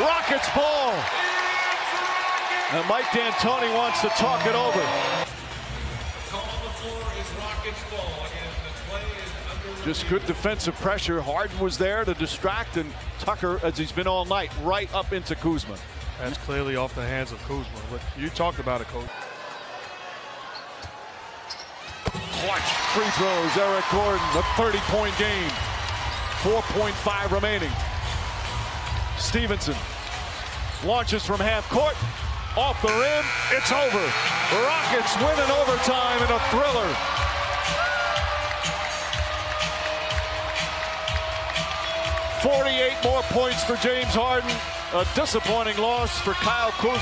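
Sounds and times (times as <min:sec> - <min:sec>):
crowd cheering: 0:00.0 - 0:05.3, 0:19.1 - 0:47.0
buzzer: 0:32.9 - 0:35.0.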